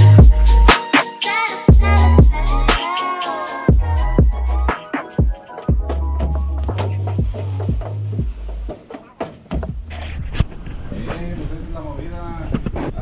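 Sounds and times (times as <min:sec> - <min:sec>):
music with heavy bass beat: 0:00.0 - 0:01.1, 0:01.7 - 0:02.8, 0:03.7 - 0:10.0.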